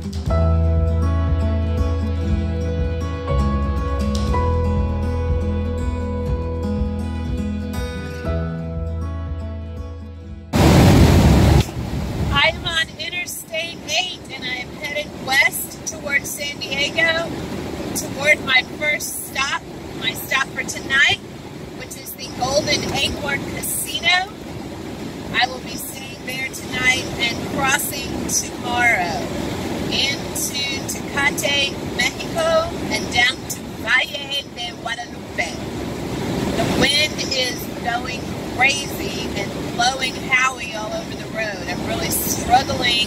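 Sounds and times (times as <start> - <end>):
road and wind noise: 10.5 - 43.0
loud rush of noise: 10.6 - 13.1, 14.3 - 43.0
woman talking: 12.3 - 17.3, 18.0 - 21.2, 21.8 - 24.4, 25.3 - 29.3, 29.9 - 35.7, 36.6 - 43.0.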